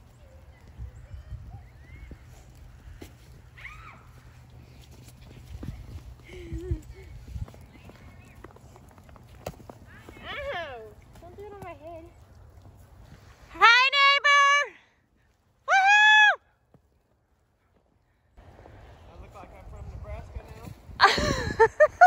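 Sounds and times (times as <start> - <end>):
low outdoor rumble: 17.1 - 22.0.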